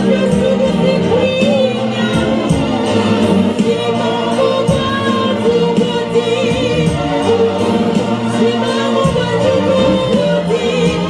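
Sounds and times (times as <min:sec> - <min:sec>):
backing voices singing: 0:00.0 - 0:11.0
steady beat: 0:00.0 - 0:11.0
woman singing gospel song: 0:00.0 - 0:11.0.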